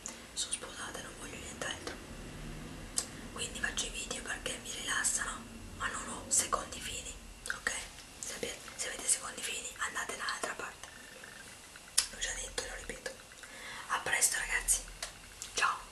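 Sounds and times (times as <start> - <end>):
woman whispering: 0.4 - 2.0, 3.3 - 11.0, 12.0 - 14.9, 15.5 - 15.9.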